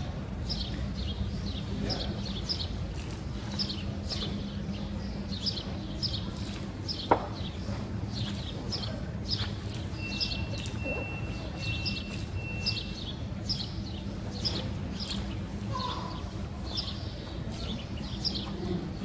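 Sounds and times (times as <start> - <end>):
small birds chirping: 0.4 - 18.8.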